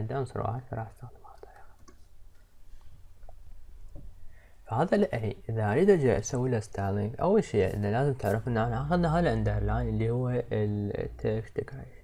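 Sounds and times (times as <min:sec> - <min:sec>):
low steady hum: 0:00.0 - 0:12.0
keyboard and mouse clicks: 0:01.3 - 0:04.1
faint breathing: 0:04.2 - 0:04.7.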